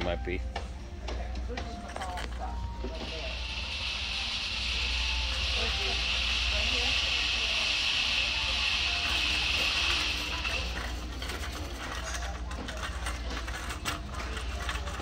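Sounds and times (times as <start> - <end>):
shopping cart rattling: 1.6 - 3.2, 6.8 - 15.0
steady high hiss: 2.9 - 10.5.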